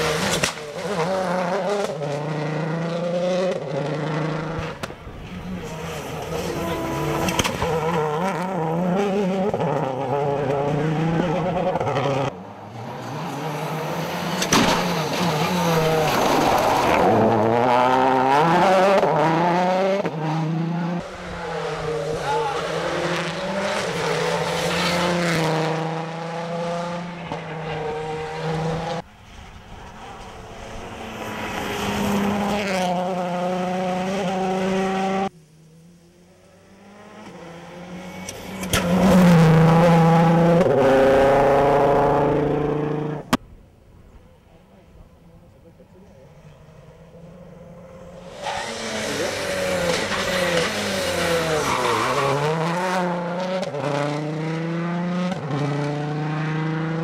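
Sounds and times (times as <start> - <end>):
rally car engines revving past: 0.0 - 43.4, 45.1 - 57.0.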